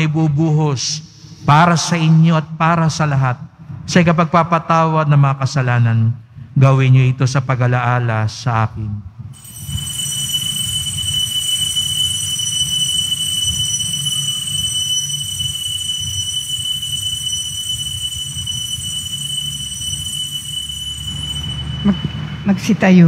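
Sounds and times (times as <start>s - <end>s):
small bells ringing: 9.4s - 22.8s.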